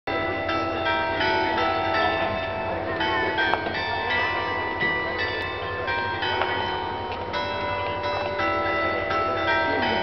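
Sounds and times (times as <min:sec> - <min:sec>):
bells ringing: 0:00.1 - 0:10.0.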